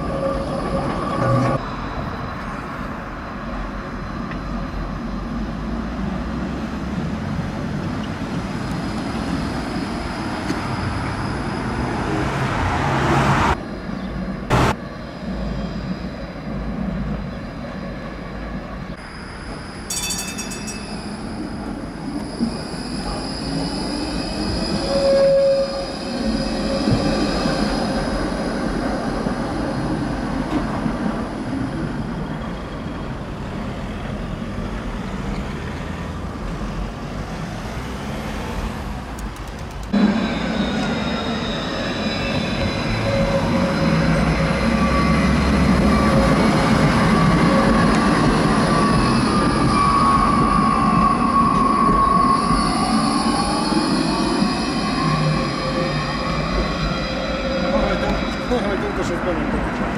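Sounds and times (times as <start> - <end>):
tram rumble: 0.0 - 59.9
high-pitched wheel squeal: 19.0 - 28.6, 40.0 - 58.8.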